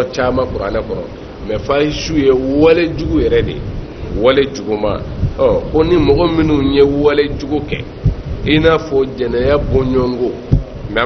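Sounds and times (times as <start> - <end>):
man speaking into a microphone: 0.0 - 11.0.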